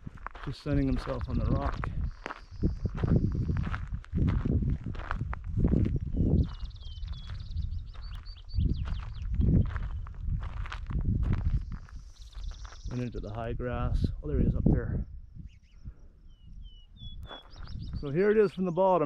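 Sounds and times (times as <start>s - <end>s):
footsteps crunching on gravel: 0.0s - 13.4s, 17.2s - 18.4s
wind rumble on microphone: 0.0s - 18.8s.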